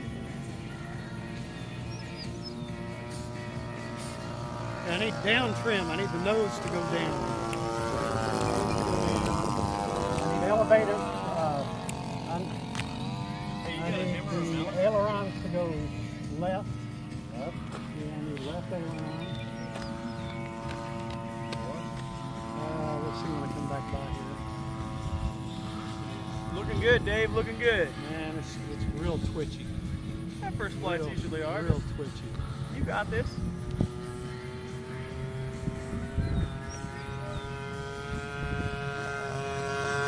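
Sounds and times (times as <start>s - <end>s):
model airplane engine droning: 0.0s - 40.0s.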